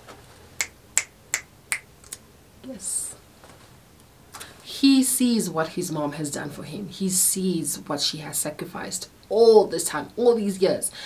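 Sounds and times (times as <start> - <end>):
finger snaps: 0.6 - 2.2.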